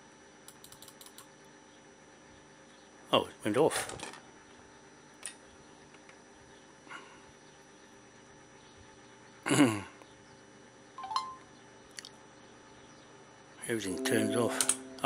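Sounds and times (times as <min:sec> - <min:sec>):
brief beep: 0:13.9 - 0:15.0.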